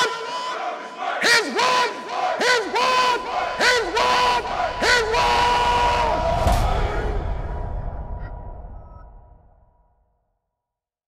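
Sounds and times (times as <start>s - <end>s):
men shouting: 0.0s - 7.3s.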